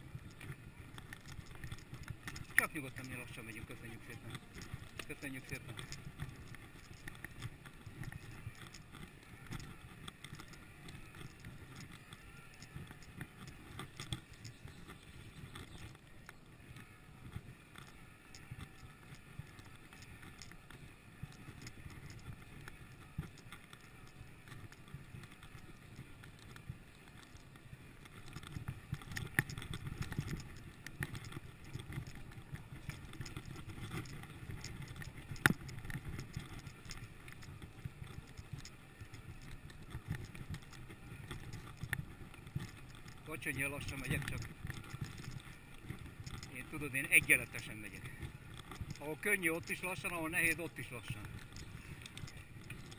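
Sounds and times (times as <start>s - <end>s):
bike clicks and rattles: 0.0s - 52.9s
bike tyres rumbling on dirt: 0.0s - 52.9s.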